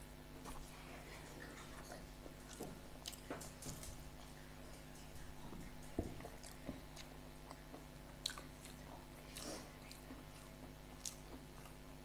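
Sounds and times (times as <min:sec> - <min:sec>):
person chewing crisp food: 0:00.4 - 0:04.5, 0:06.2 - 0:12.0.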